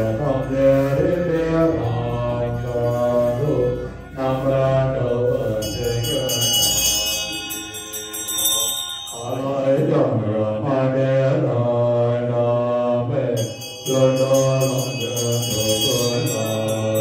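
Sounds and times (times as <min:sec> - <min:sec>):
hand bells ringing rapidly: 0:00.0 - 0:09.9, 0:13.4 - 0:17.0
low group chanting: 0:00.0 - 0:17.0.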